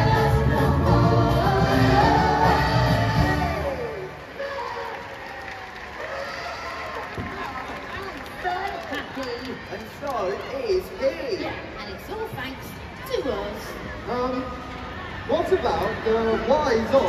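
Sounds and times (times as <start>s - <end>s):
pop song over loudspeakers: 0.0s - 4.9s
crowd noise and voices: 0.0s - 17.0s.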